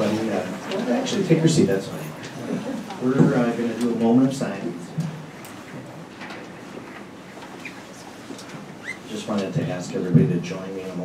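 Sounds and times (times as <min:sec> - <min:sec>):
office chair squeaking: 0:07.4 - 0:09.4.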